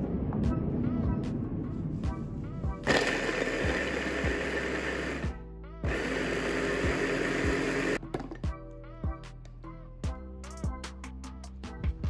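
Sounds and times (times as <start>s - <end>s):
electric chopper blade whirring: 2.8s - 5.3s, 5.9s - 8.0s.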